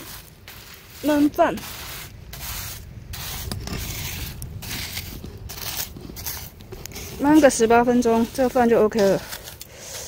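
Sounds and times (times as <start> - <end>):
sand scraped over fire: 0.0 - 10.0.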